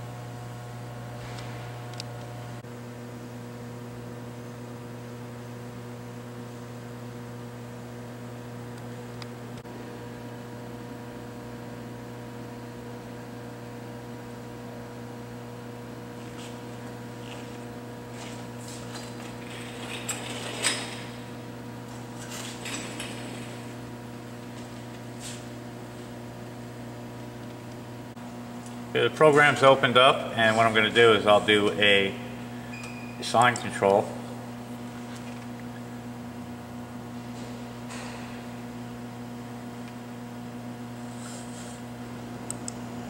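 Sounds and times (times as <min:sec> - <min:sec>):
electrical hum: 0:00.0 - 0:43.0.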